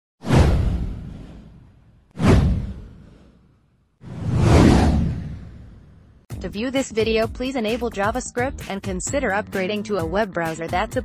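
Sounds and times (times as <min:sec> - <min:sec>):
whoosh with deep rumble: 0:00.2 - 0:06.3.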